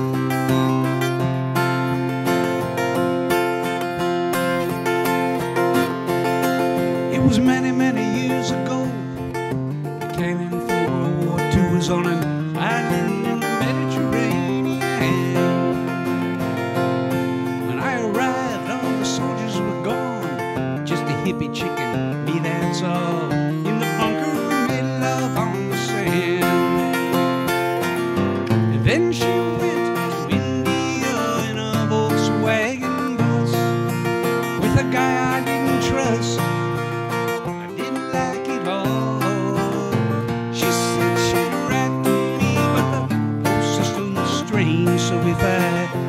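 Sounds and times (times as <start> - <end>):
acoustic guitars strumming: 0.0 - 46.0
man singing: 0.0 - 46.0.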